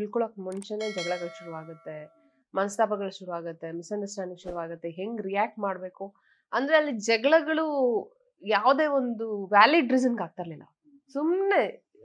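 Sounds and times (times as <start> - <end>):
woman speaking: 0.0 - 11.8
metallic ding: 0.6 - 2.2.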